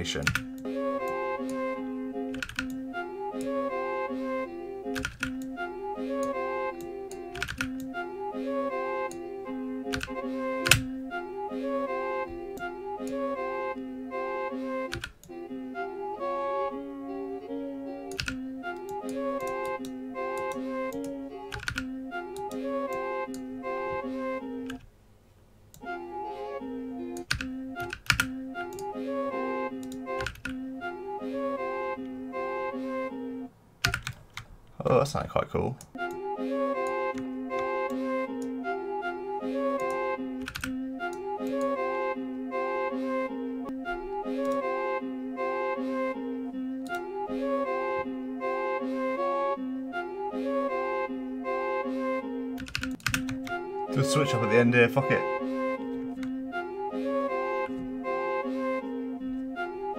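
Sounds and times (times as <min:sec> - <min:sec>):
chopped flute and bell melody: 0:00.0 - 0:24.8, 0:25.8 - 0:33.5, 0:36.0 - 0:59.9
computer keyboard clicks: 0:02.4 - 0:02.8, 0:07.4 - 0:07.9, 0:27.2 - 0:28.3, 0:33.8 - 0:34.4, 0:39.8 - 0:40.7, 0:52.6 - 0:53.5.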